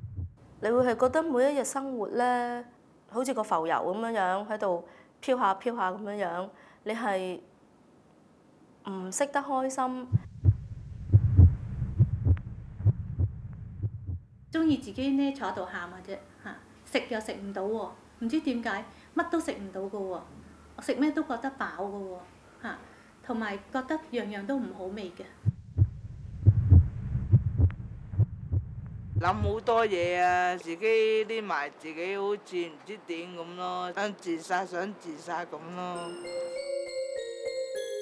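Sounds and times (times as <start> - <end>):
heartbeat double thumps: 0.0 - 1.2, 10.1 - 14.8, 25.4 - 30.3
woman speaking: 0.6 - 7.5, 8.9 - 10.2, 14.6 - 25.4.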